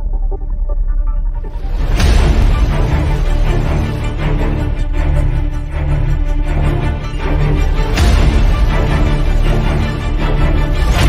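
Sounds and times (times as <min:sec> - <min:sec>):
intro theme music with deep bass: 0:00.0 - 0:11.0.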